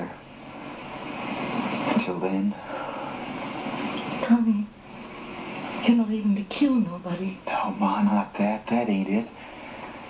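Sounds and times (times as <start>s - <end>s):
noisy drone: 0.0s - 10.0s.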